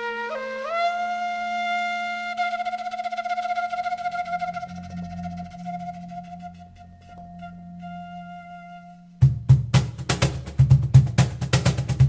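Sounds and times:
bamboo flute long wavering note: 0.0 - 9.4
low bass note: 4.2 - 9.5.

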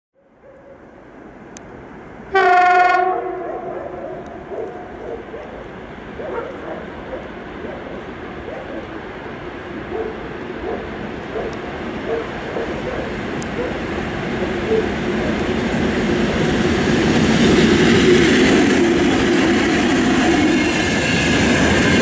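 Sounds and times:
train wheels rumbling on rail: 1.6 - 22.0
locomotive horn blast: 2.3 - 4.3.

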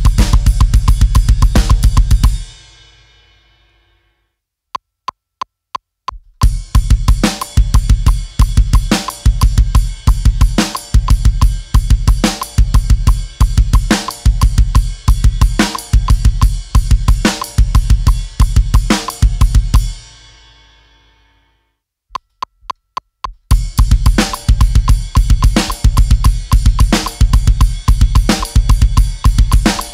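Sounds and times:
heavy metal drum groove: 0.0 - 3.0, 6.2 - 20.4, 23.5 - 29.9.

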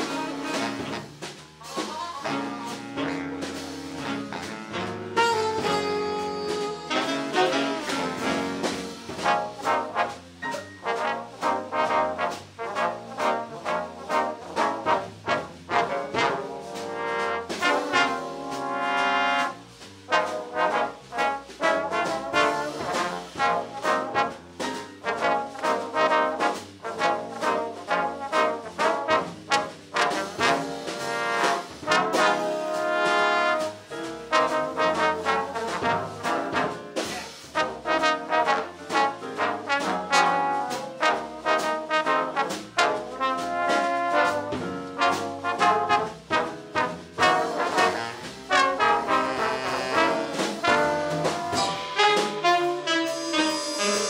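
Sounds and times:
big band playing swing jazz: 0.0 - 54.0
trombone section: 0.0 - 54.0.

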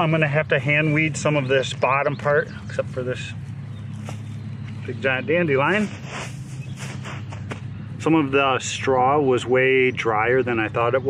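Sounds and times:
steady low hum: 0.0 - 11.0
knocks and rustles on straw: 5.7 - 7.6.

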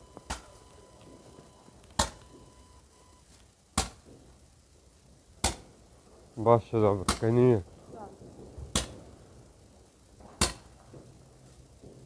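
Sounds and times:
fireworks bangs: 0.0 - 3.0, 3.7 - 4.6, 5.3 - 12.0.

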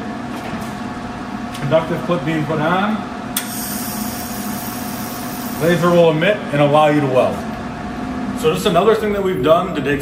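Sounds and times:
steady machine hum: 0.0 - 10.0.

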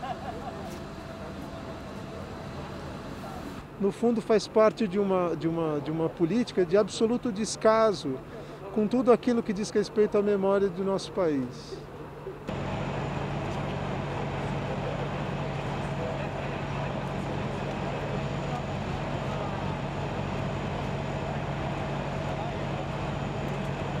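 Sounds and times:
fire truck engine running: 0.0 - 3.8, 12.4 - 24.0
faint voices: 13.7 - 24.0.

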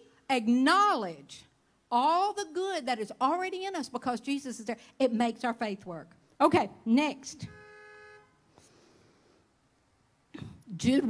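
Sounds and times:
faint steady pitched tone: 7.4 - 8.5.

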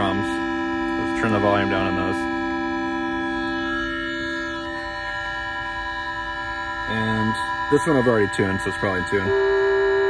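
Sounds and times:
sustained electronic chord: 0.0 - 10.0.

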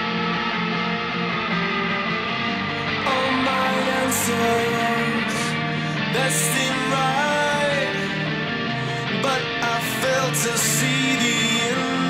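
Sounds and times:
alternative rock music with guitars: 0.0 - 12.0.

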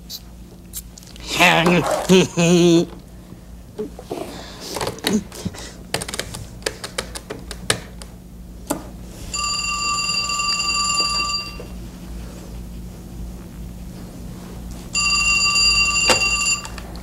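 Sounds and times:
telephone ringing: 9.3 - 11.8, 15.0 - 16.9.

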